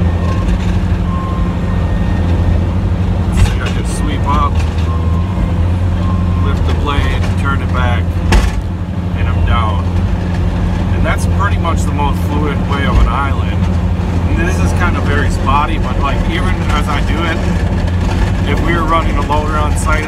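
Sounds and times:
plow blade pushing snow: 0.0 - 20.0
truck engine droning: 0.0 - 20.0.

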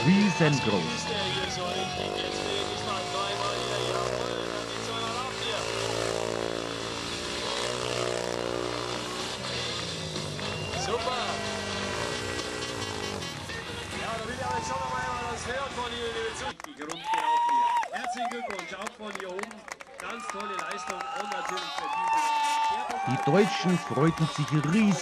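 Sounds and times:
motorcycle engine at low revs: 1.9 - 13.4.

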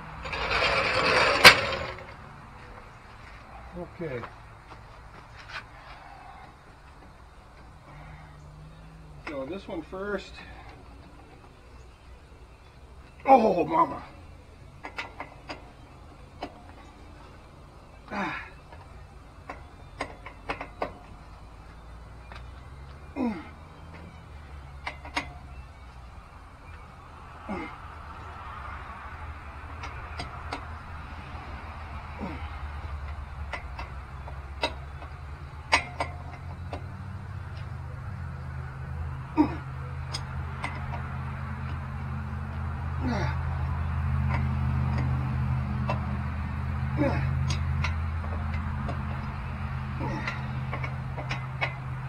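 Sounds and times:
vehicle low hum: 0.0 - 52.0.

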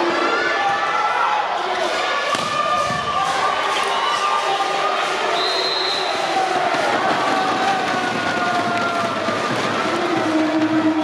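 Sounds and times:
crowd voices in a gym: 0.0 - 11.0
volleyball hits: 2.3 - 3.2.

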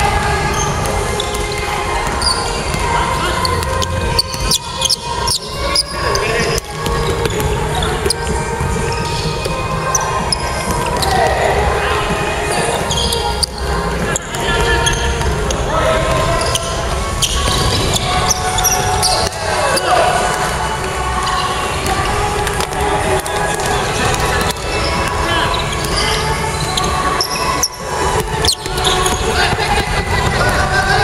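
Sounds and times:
players calling out: 0.0 - 31.0
basketball bouncing on wooden court: 0.1 - 11.6, 12.6 - 18.0, 21.8 - 30.7.

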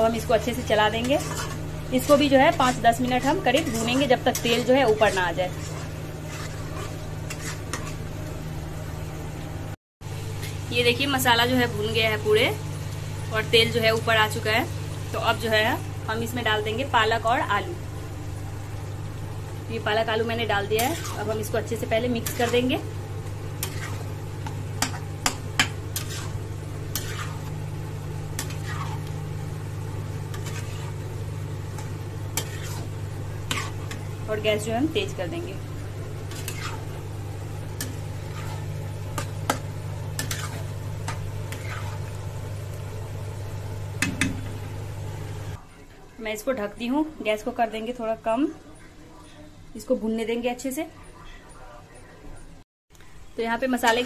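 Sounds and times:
paste sizzling in oil: 0.0 - 8.4, 18.8 - 44.5
steady low hum: 0.0 - 45.7
spatula scraping iron pan: 0.4 - 8.0, 20.7 - 22.8, 23.6 - 24.1, 24.8 - 27.5, 28.4 - 29.1, 30.3 - 31.1, 31.7 - 34.1, 36.2 - 37.0, 37.8 - 39.6, 40.2 - 42.0.

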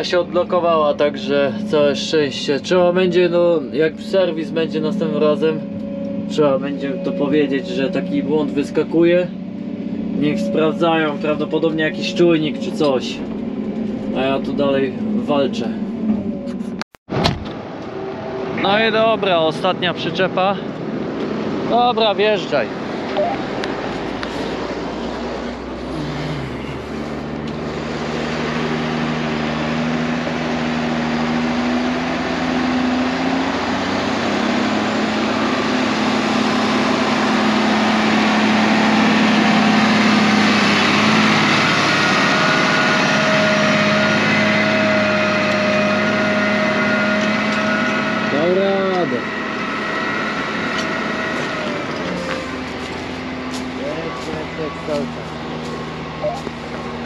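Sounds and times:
tractor diesel engine running: 0.0 - 16.9, 17.6 - 57.0.

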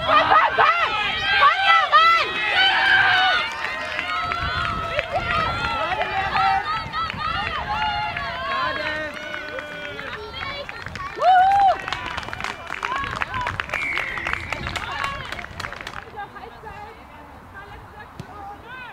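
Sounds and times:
voices shouting and cheering: 0.0 - 18.9.

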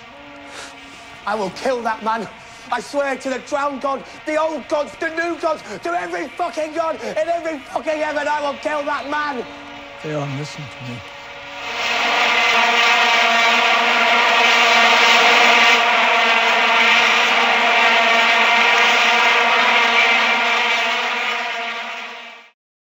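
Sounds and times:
vuvuzela blowing: 0.0 - 22.5.

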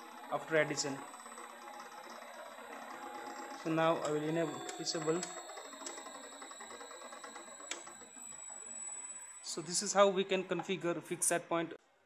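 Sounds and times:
motor mechanical hum: 0.0 - 11.5
high-pitched whine: 0.0 - 11.6.

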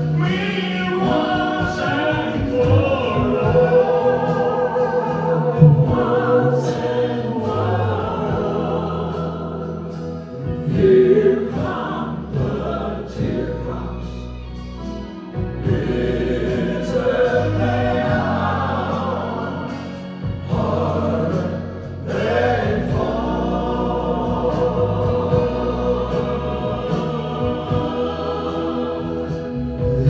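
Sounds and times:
men singing harmonies: 0.0 - 14.4, 15.5 - 30.0
acoustic guitars: 0.0 - 30.0
electric bass: 0.0 - 30.0.

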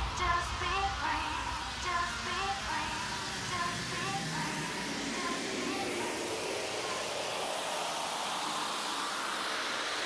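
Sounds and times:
hissing wash of sound: 0.0 - 10.0.

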